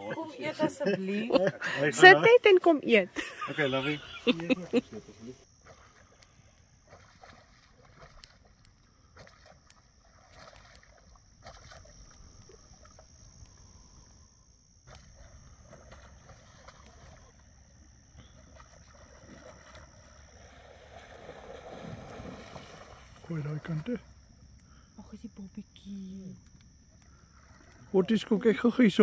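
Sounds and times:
high-pitched insect trill: 0.0s - 29.0s.

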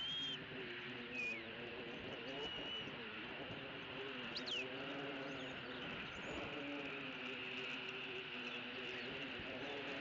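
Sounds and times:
high whistled bird calls: 0.0s - 0.4s, 1.1s - 1.5s.

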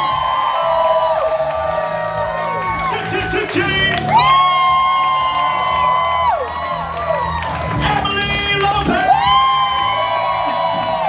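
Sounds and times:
audience cheering and whooping: 0.0s - 11.0s.

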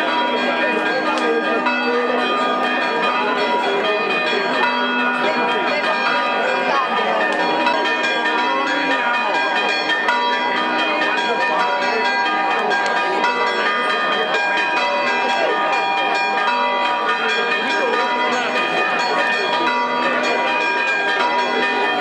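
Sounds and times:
church bells pealing: 0.0s - 22.0s
crowd chattering: 0.0s - 22.0s.

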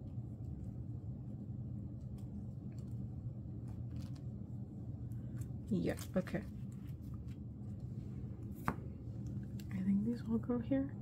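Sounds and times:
faint low steady hum: 0.0s - 11.0s.

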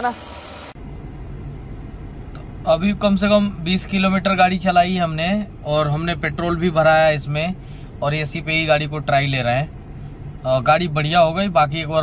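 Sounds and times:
car engine idling: 0.5s - 12.0s.

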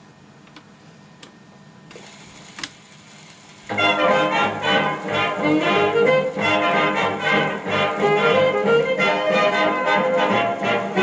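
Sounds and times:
stylus hiss in record groove: 1.9s - 11.0s.

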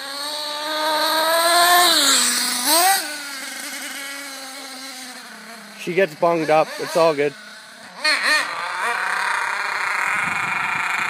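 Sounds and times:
model nitro engine buzzing: 0.0s - 11.0s.

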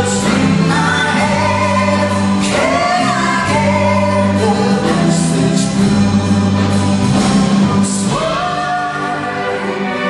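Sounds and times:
woman and man singing duet: 0.0s - 6.5s, 7.8s - 10.0s
symphony orchestra with strings: 0.0s - 10.0s.

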